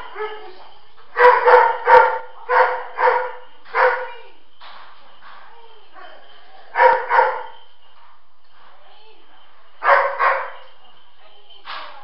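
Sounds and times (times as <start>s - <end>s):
dog barking: 1.2s - 4.2s, 6.7s - 7.6s, 9.8s - 10.6s.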